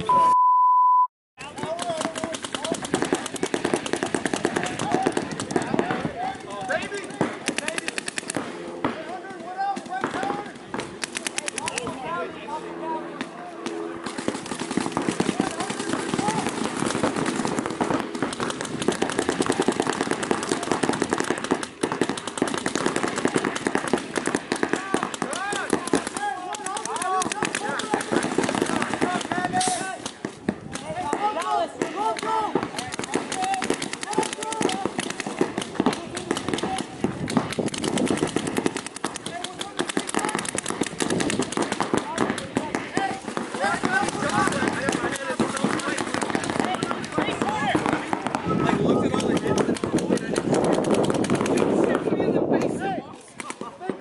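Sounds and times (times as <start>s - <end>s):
paintball markers firing: 1.5s - 12.0s, 13.2s - 54.0s
players shouting: 14.2s - 21.0s, 23.8s - 37.2s, 38.2s - 50.5s.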